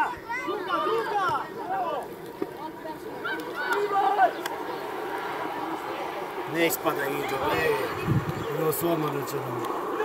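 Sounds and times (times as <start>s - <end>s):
people shouting and calling: 0.0s - 10.0s.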